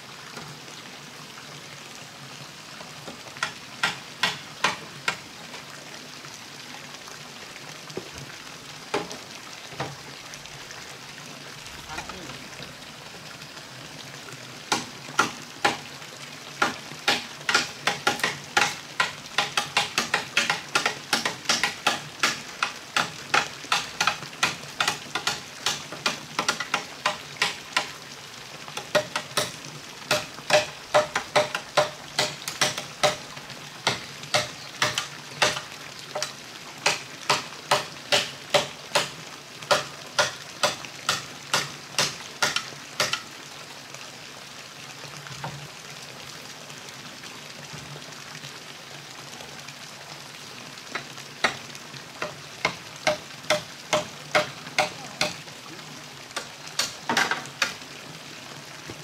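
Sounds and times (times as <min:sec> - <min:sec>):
hammer striking nails into wood: 0:17.1 - 0:22.4, 0:30.1 - 0:33.2, 0:36.2 - 0:39.1.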